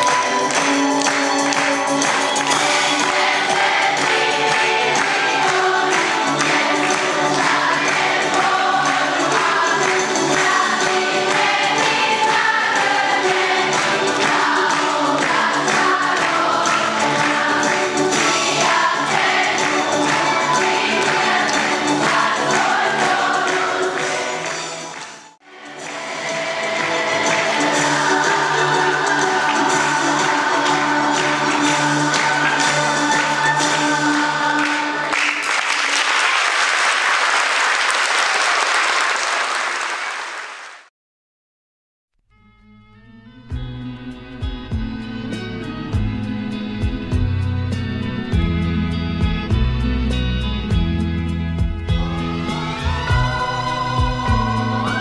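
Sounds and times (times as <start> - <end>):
children's choir singing: 0.0 - 40.6, 52.3 - 55.0
audience applauding: 0.0 - 40.9.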